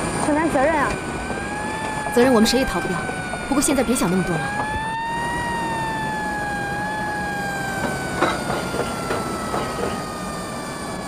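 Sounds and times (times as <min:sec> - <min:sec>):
ambulance siren wailing: 0:00.0 - 0:11.0.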